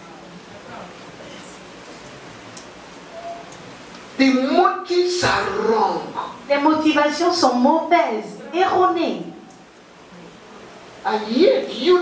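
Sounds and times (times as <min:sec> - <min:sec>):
room background hiss: 0:00.0 - 0:12.0.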